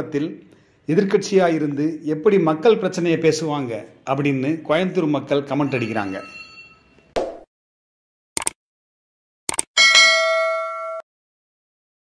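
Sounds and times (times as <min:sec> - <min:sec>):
notification bell ding: 0:05.6 - 0:07.0, 0:09.8 - 0:11.0.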